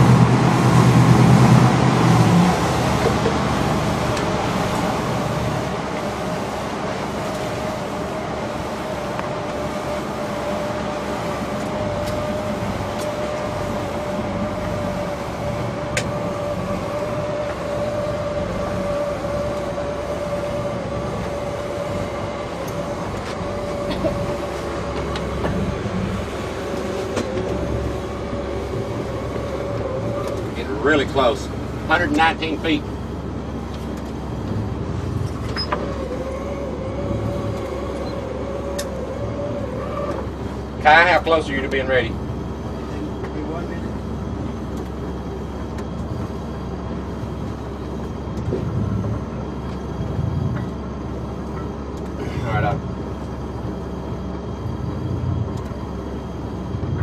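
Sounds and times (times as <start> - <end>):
rushing water: 0.0 - 55.1
motorboat engine drone: 0.0 - 57.0
wind: 0.0 - 57.0.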